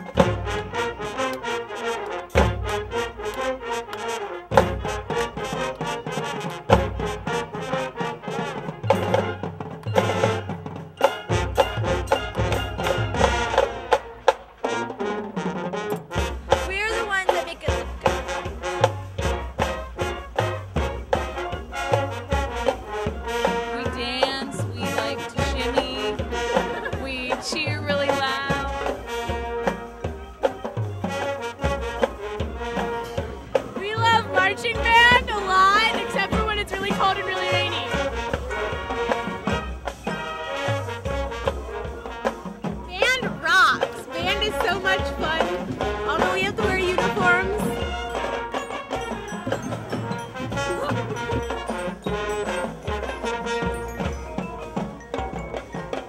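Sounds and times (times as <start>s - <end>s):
brass band music: 0.0s - 56.0s.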